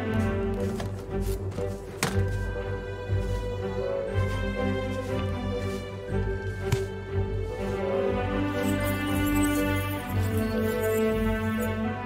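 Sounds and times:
slow ambient fantasy music: 0.0s - 12.0s.

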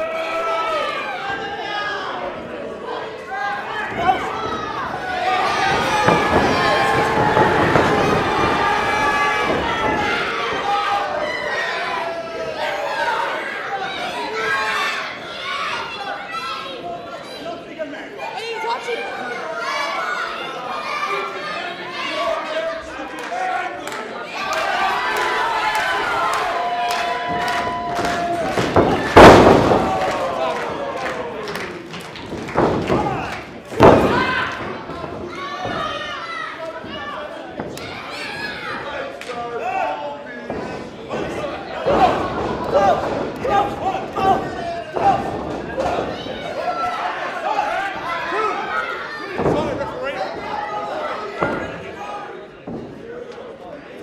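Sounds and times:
crowd shouting: 0.0s - 17.4s, 18.2s - 53.2s.

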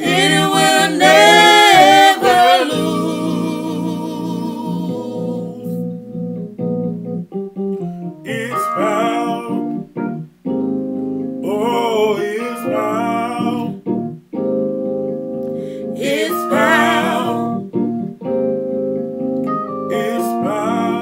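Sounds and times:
gospel singing: 0.0s - 6.0s, 8.3s - 9.9s, 11.4s - 13.8s, 15.8s - 17.9s, 19.8s - 21.0s
organ-like keyboard chords: 0.0s - 21.0s.

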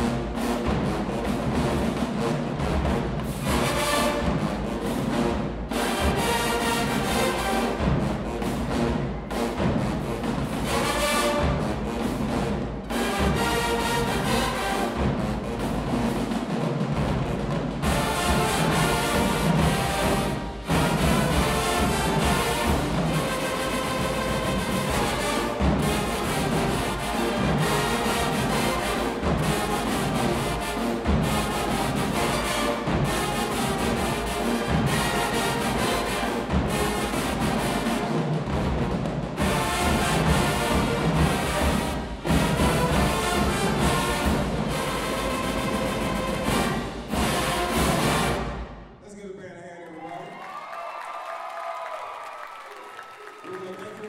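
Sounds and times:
drumline: 0.0s - 49.0s
marching band playing: 0.0s - 49.0s.

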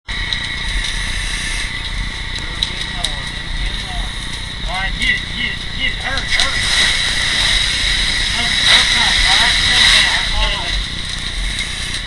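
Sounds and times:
fire rumbling and crackling: 0.0s - 12.0s
high-pitched whine: 0.1s - 12.0s.

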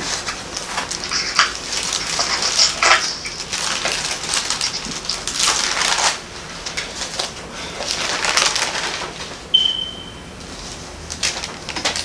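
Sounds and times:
paper pages rustling: 0.0s - 9.4s, 10.5s - 12.0s.

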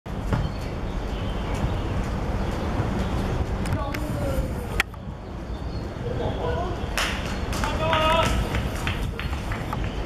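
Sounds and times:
wind rumble on microphone: 0.1s - 10.0s.

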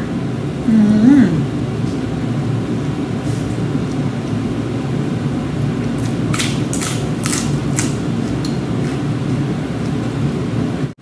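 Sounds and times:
steady low hum: 0.0s - 11.0s
crisp crunching clicks: 6.0s - 8.0s
person chewing food: 6.0s - 9.0s.

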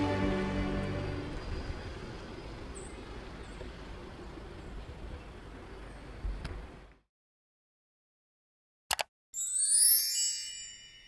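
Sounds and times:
steady rumble and hiss: 0.0s - 6.9s.

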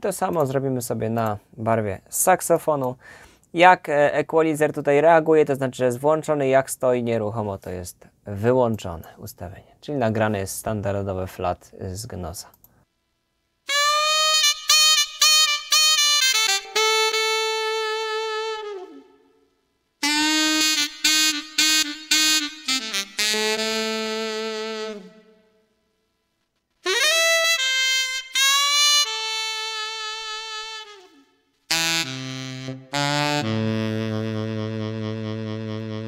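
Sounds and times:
synthesized saxophone melody: 13.6s - 25.8s, 26.8s - 36.0s.

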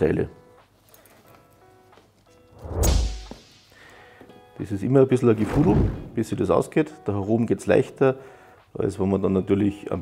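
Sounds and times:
soft background music: 0.0s - 10.0s
whoosh with deep boom: 2.6s - 3.4s.

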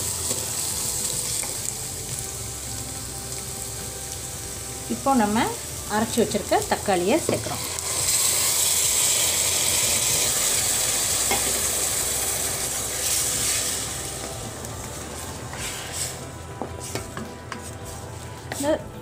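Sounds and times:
food sizzling: 0.0s - 19.0s
wooden spoon stirring: 14.2s - 18.7s.

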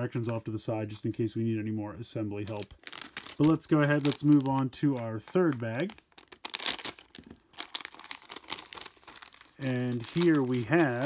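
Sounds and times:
plastic bag crinkling and tearing: 2.4s - 11.0s.

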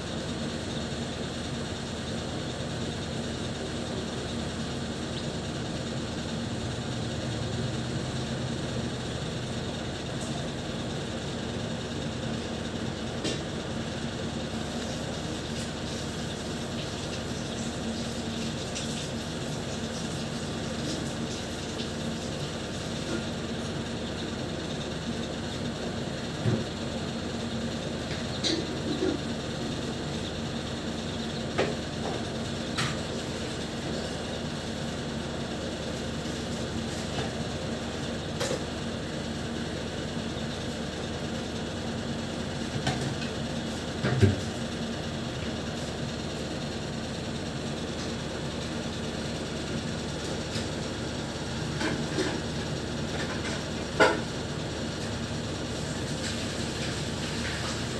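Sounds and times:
mechanical hum: 0.0s - 57.9s.

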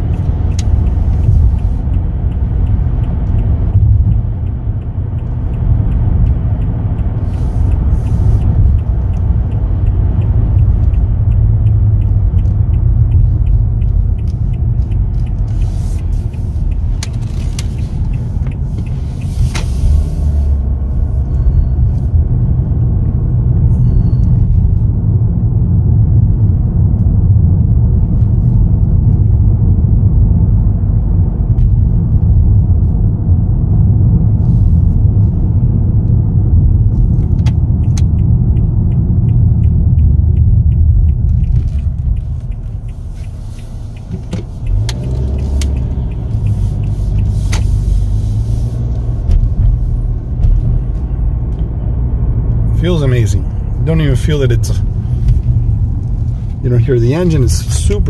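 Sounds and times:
road and tyre rumble in car: 0.0s - 58.0s.

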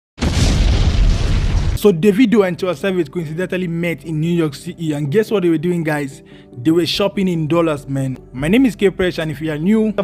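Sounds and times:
boom with deep rumble: 0.2s - 1.8s.

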